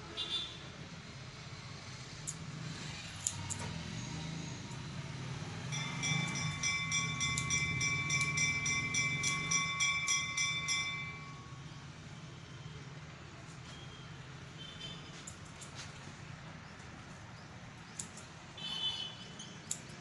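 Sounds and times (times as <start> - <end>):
high ringing tone: 5.6 - 12.2.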